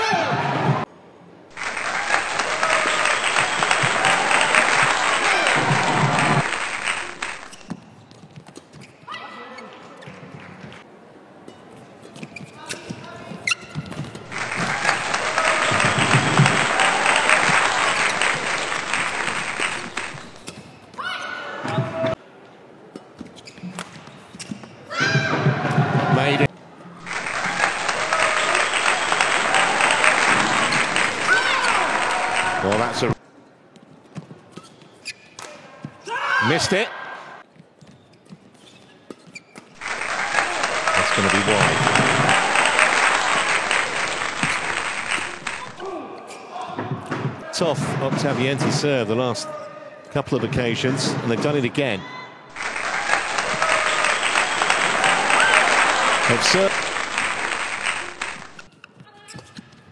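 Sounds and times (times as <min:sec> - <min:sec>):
loud crowd noise: 0:00.0 - 0:07.7, 0:14.0 - 0:20.5, 0:24.9 - 0:33.2, 0:39.8 - 0:58.7.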